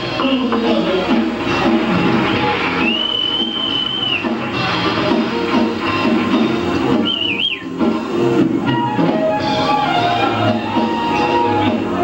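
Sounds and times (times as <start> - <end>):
jazz band playing: 0.0 - 12.0
high wavering whistle-like note: 2.8 - 4.4, 7.0 - 7.8.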